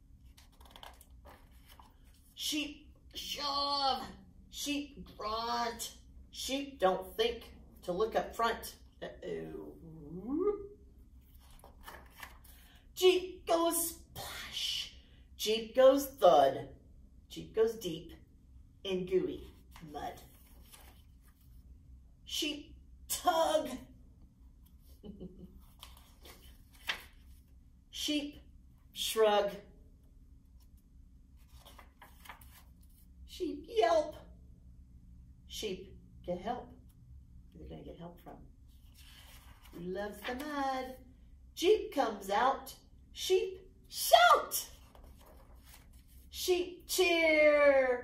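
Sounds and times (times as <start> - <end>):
low room hum: 0.0 - 48.0
book page turning: 0.2 - 2.4, 11.2 - 12.7, 19.5 - 21.6, 25.6 - 27.5, 31.4 - 33.1, 38.8 - 40.4, 44.7 - 46.3.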